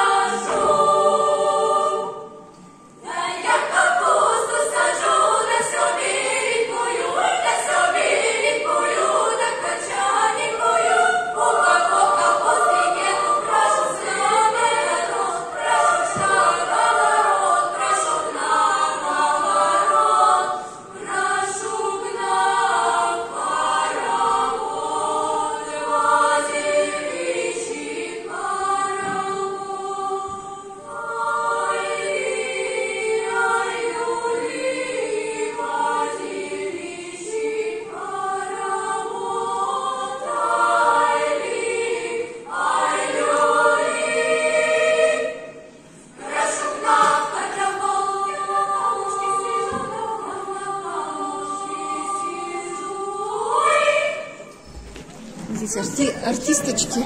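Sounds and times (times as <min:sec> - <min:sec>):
girls' choir singing: 0:00.0 - 0:57.0.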